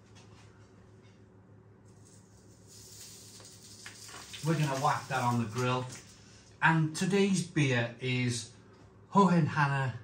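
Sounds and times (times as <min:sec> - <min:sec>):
steady low hum: 0:00.0 - 0:10.0
faint hiss: 0:02.0 - 0:06.4.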